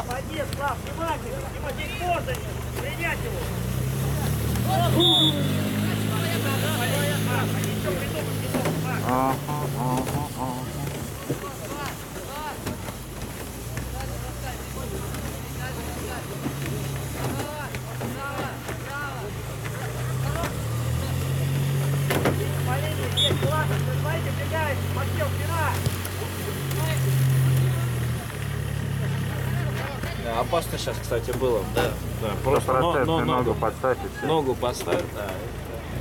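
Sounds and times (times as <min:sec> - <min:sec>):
players shouting: 0:04.3 - 0:11.1
low engine-like drone: 0:06.2 - 0:11.2.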